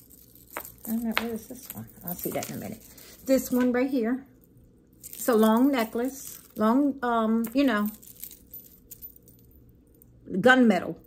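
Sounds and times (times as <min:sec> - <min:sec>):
metal chain necklace clinking: 0:00.0 - 0:10.2.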